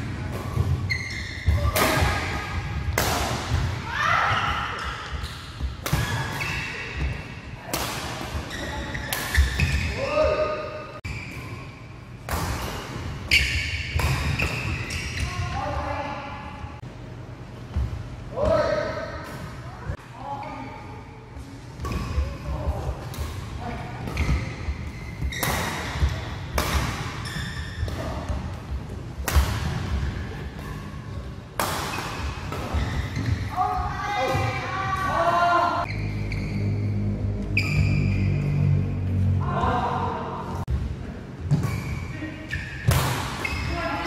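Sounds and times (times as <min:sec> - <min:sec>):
rackets hitting shuttlecock: 0:12.2 - 0:15.3, 0:24.0 - 0:28.4, 0:31.6 - 0:33.5.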